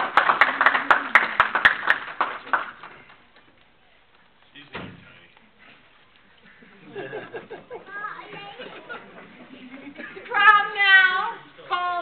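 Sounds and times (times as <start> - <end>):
people talking quietly: 2.4 - 12.0.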